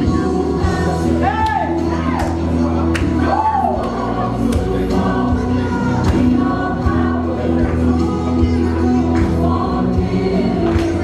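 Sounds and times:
choir singing gospel music: 0:00.0 - 0:11.0
steady bass line: 0:00.0 - 0:11.0.

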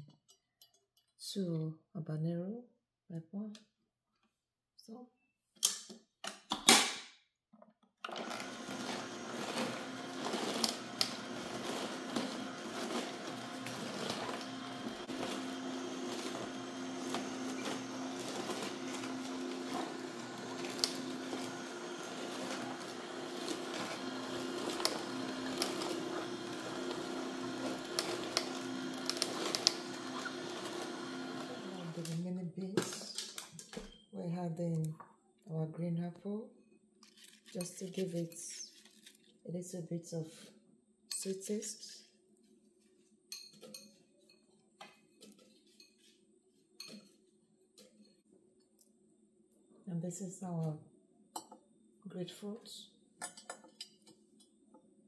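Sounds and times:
juicer motor hum: 0:08.0 - 0:32.2
vegetables crackling in juicer: 0:08.0 - 0:33.7.

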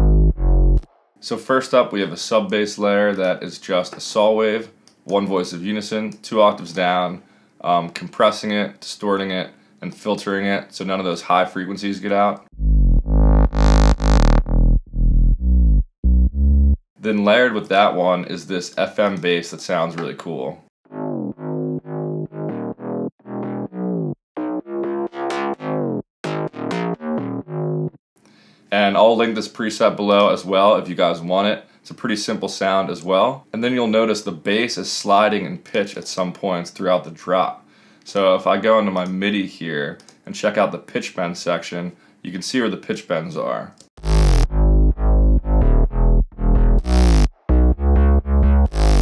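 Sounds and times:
distorted synth bass line: 0:00.0 - 0:00.9, 0:12.5 - 0:16.8, 0:20.9 - 0:28.0, 0:44.0 - 0:49.0.

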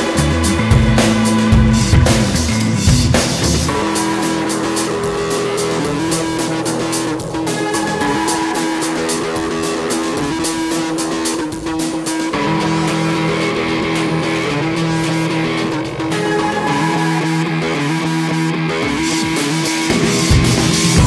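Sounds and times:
instrumental music with held chords: 0:00.0 - 0:21.0.

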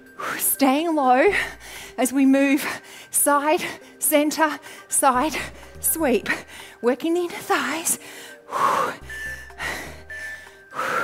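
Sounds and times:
background music: 0:00.0 - 0:11.0
woman breathing hard: 0:01.3 - 0:02.0, 0:08.0 - 0:11.0.

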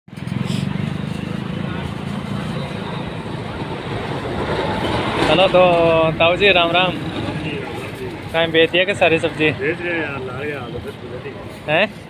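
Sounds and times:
street noise: 0:00.1 - 0:12.0.

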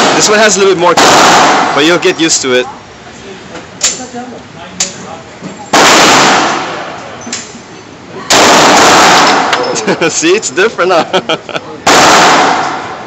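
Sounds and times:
pistol shots ringing indoors: 0:00.9 - 0:01.8, 0:05.7 - 0:06.9, 0:08.3 - 0:09.6, 0:11.9 - 0:13.0.

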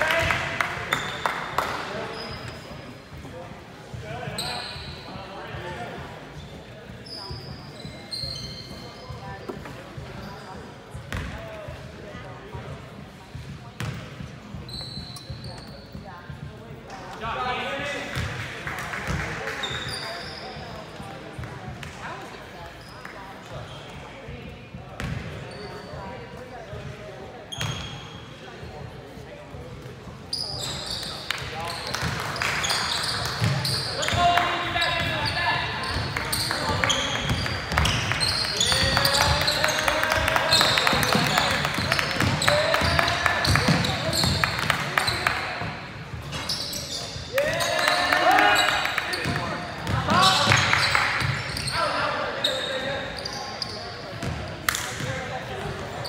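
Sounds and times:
people talking: 0:00.0 - 0:56.0.

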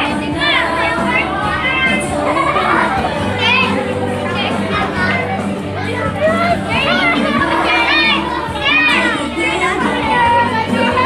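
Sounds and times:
children singing and calling out: 0:00.0 - 0:11.0
recorded music: 0:00.0 - 0:11.0.

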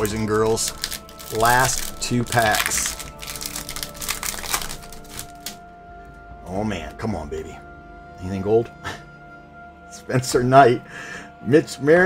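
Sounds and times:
foil wrapper crinkling: 0:00.0 - 0:05.6.

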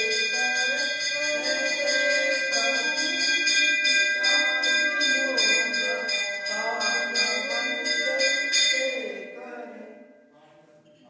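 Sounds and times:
voices singing: 0:00.0 - 0:10.1
temple bell ringing: 0:00.0 - 0:10.3.

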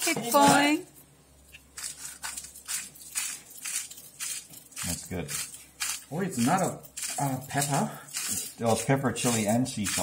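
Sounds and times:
pepper mill grinding: 0:00.0 - 0:10.0.

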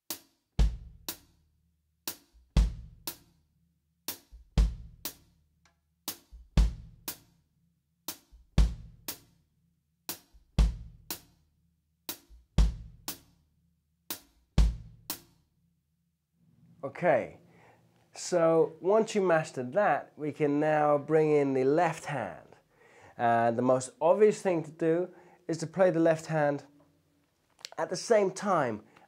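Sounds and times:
bass drum hits: 0:02.6 - 0:03.0, 0:04.4 - 0:05.0, 0:06.4 - 0:07.0, 0:08.6 - 0:08.9, 0:10.6 - 0:11.0, 0:12.4 - 0:13.1, 0:14.6 - 0:15.0
hi-hat hits: 0:06.1 - 0:07.3, 0:12.1 - 0:13.4.

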